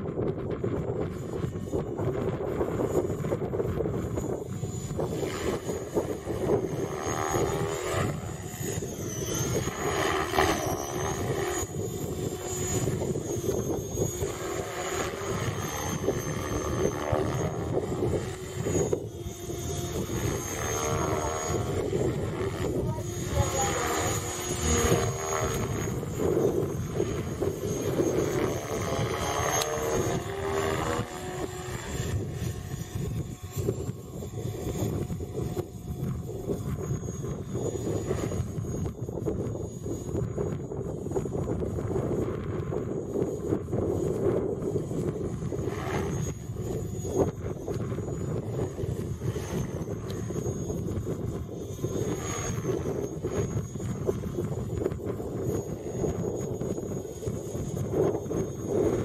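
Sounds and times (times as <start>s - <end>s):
high motor whine: 0.0s - 59.0s
low rotor hum: 0.0s - 59.0s.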